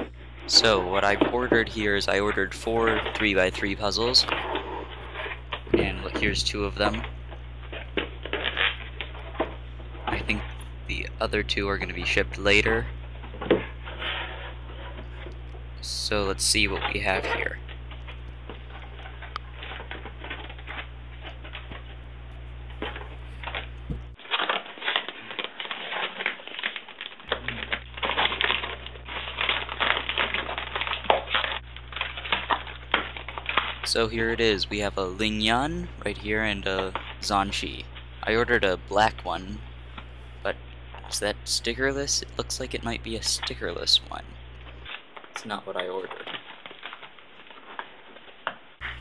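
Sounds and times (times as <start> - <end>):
steady low hum: 0.0 - 24.3, 27.2 - 47.6, 48.7 - 49.0
plastic packaging crinkling: 16.8 - 41.2, 44.4 - 49.0.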